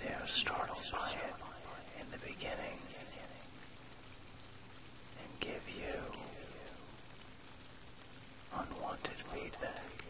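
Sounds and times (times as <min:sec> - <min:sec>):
person whispering: 0:00.0 - 0:03.6, 0:05.1 - 0:07.0, 0:08.5 - 0:10.0.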